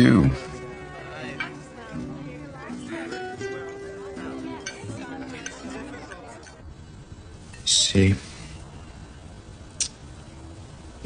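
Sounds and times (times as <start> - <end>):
soft musical score: 0.0 - 6.5
faint background voices: 0.0 - 11.0.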